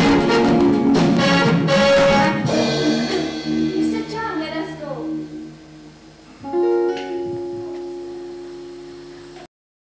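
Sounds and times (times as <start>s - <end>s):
plucked string instrument: 6.3s - 9.5s.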